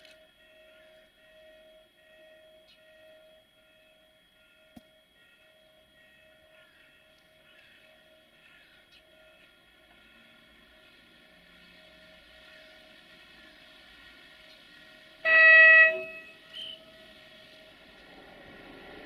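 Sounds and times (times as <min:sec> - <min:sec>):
faint steady hum: 0:00.0 - 0:18.8
locomotive rumble: 0:06.4 - 0:19.0
locomotive horn blast: 0:15.2 - 0:16.9.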